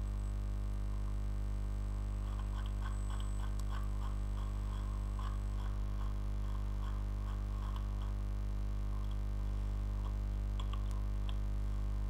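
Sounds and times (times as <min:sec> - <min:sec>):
electrical mains hum: 0:00.0 - 0:12.0
faint irregular clicks: 0:02.2 - 0:08.2, 0:08.9 - 0:09.3, 0:10.0 - 0:11.5.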